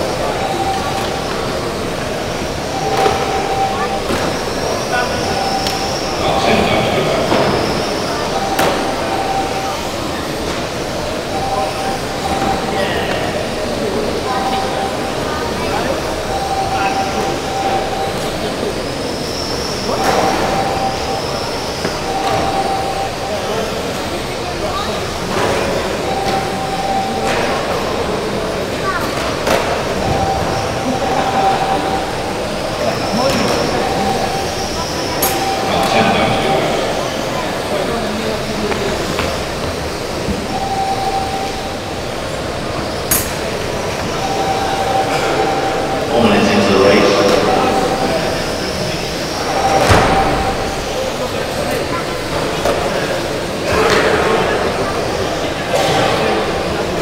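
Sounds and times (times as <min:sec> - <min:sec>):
steady tone: 0:00.0 - 0:53.6
electric motors whining: 0:00.0 - 0:57.0.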